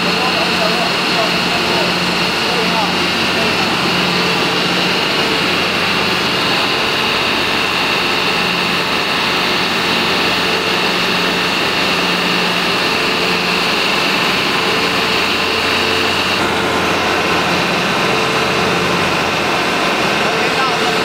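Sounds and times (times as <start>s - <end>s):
electric motor humming with whine: 0.0s - 21.0s.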